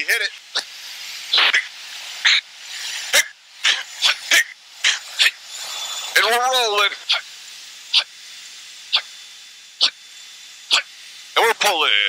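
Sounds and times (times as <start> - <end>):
intercom hiss: 1.3 - 7.3, 10.7 - 12.0.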